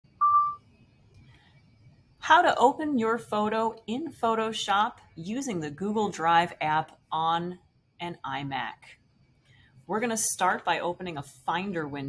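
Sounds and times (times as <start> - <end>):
short electronic beep: 0.2 - 0.6.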